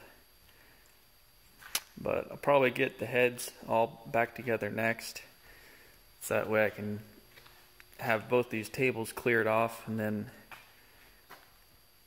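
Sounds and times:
sharp click: 0:01.6 - 0:02.0.

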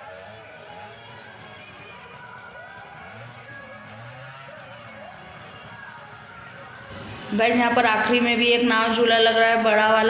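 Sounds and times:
distant voice: 0:00.0 - 0:10.0
faint music: 0:00.0 - 0:10.0.

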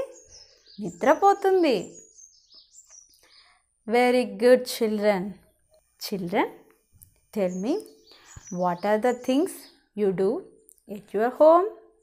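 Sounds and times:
small birds chirping: 0:00.0 - 0:12.0
woman's voice: 0:00.8 - 0:02.0, 0:03.9 - 0:05.4, 0:06.0 - 0:06.6, 0:07.4 - 0:07.9, 0:08.5 - 0:11.8.

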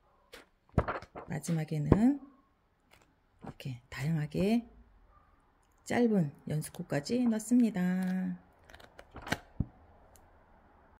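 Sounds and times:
book pages flipping: 0:00.3 - 0:01.5, 0:02.8 - 0:03.6, 0:07.5 - 0:09.7.

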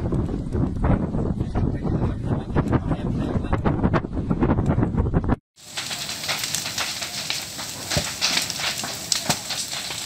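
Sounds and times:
wind buffeting microphone: 0:00.0 - 0:05.4
burning wood crackling: 0:05.6 - 0:10.0.

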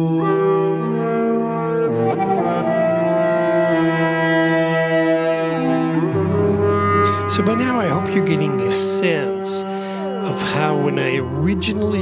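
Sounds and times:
resonant pulse synth voice: 0:00.0 - 0:12.0
synthesizer sustained notes: 0:00.0 - 0:12.0.

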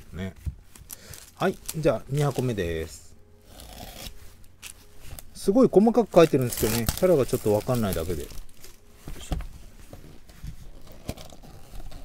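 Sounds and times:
utility knife cutting plastic wrap: 0:06.1 - 0:08.6.

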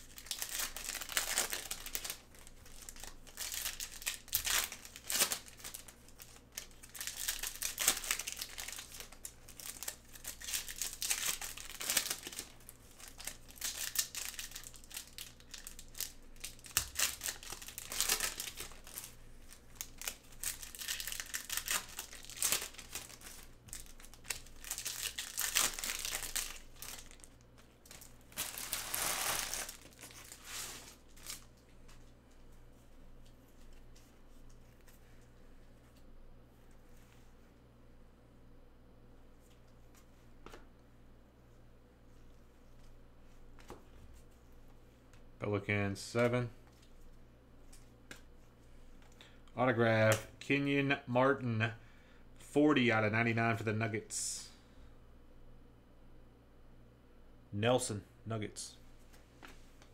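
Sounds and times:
foil wrappers tearing and crinkling: 0:00.0 - 0:31.5.

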